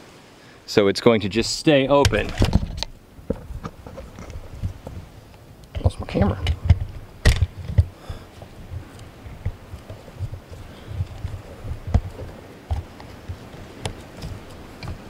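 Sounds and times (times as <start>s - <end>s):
low handling thumps: 5.8s - 15.0s.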